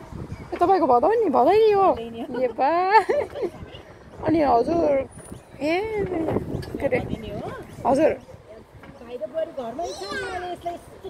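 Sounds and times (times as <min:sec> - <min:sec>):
child laughing and playing: 0:02.3 - 0:04.0.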